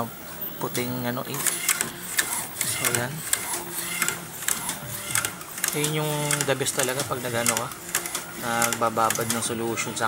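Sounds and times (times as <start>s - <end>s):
printer mechanism whirring: 0.0s - 10.0s
sharp printer clicks: 1.3s - 10.0s.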